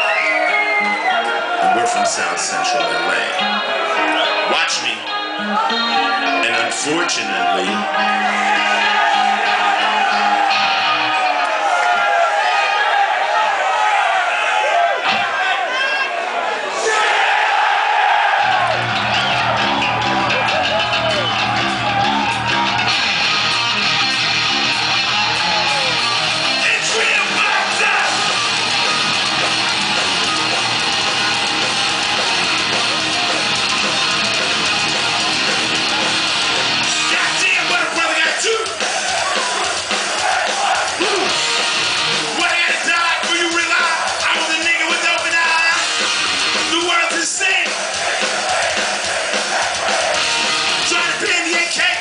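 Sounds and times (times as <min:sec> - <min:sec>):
distorted electric guitars: 0:00.0 - 0:12.4, 0:18.4 - 0:52.0
bass guitar: 0:02.8 - 0:11.7, 0:18.4 - 0:46.9, 0:48.5 - 0:52.0
drums: 0:14.9 - 0:15.4, 0:17.2 - 0:52.0.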